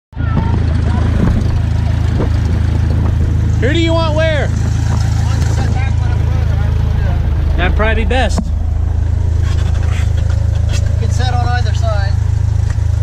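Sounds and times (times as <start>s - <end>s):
low engine drone: 0.1s - 13.0s.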